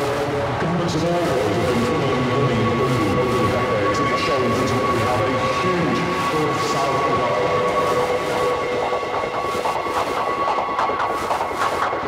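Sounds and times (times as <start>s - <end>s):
rumbling rail noise: 0.0s - 12.0s
steady whining tones: 0.0s - 12.0s
rhythmic percussion ticks: 6.0s - 12.0s.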